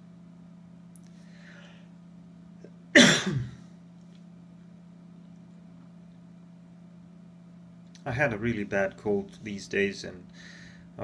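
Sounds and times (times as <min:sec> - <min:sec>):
man coughing: 0:02.9 - 0:03.7.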